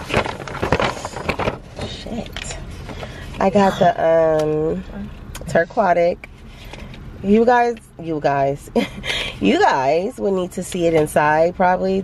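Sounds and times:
paper bag rustling and crinkling: 0:00.0 - 0:03.4.

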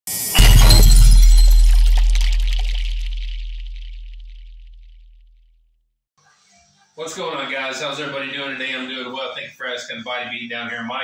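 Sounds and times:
crash with deep boom: 0:00.3 - 0:05.2.

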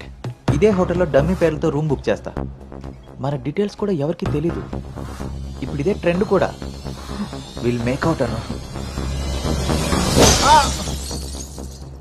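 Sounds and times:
film music: 0:00.0 - 0:12.0
glass shattering: 0:07.0 - 0:12.0.

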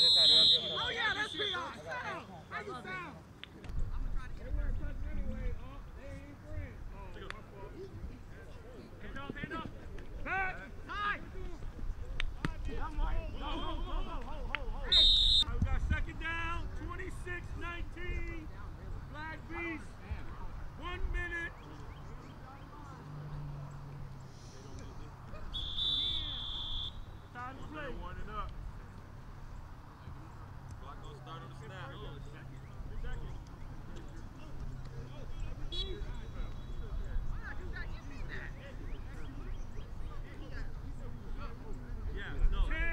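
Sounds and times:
men shouting short calls: 0:00.0 - 0:02.8
distant voices talking: 0:00.0 - 0:42.9.

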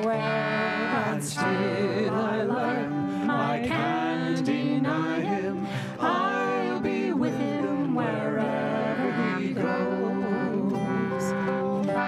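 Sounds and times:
concertina: 0:00.0 - 0:12.0
people singing: 0:00.0 - 0:12.0.

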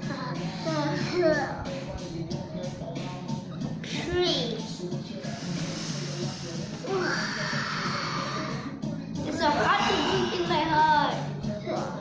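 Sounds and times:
background music: 0:00.0 - 0:12.0
person raspy breathing: 0:05.3 - 0:08.7.

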